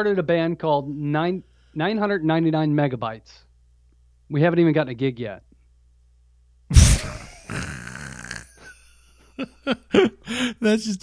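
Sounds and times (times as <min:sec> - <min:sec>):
man laughing: 0:06.8 - 0:11.0.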